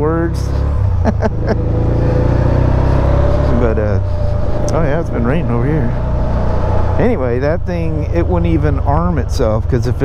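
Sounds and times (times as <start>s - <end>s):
motorcycle engine running: 0.0s - 10.0s
road and wind noise: 0.0s - 10.0s
person laughing: 1.0s - 4.8s.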